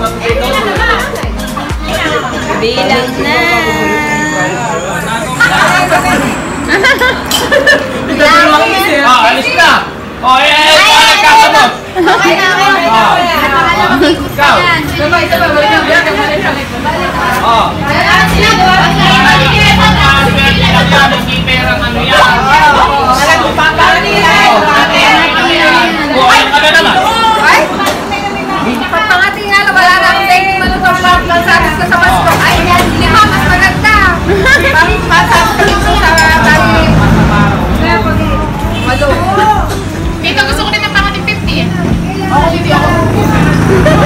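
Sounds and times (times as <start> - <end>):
group of people talking: 0.0 - 44.0
people chattering: 0.0 - 44.0.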